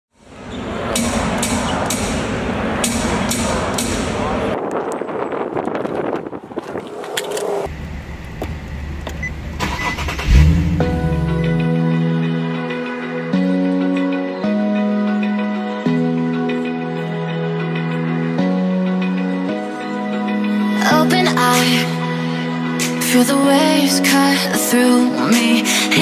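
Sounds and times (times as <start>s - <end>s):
music: 0.2s - 4.6s, 9.7s - 26.0s
car engine starting and humming: 6.6s - 11.8s.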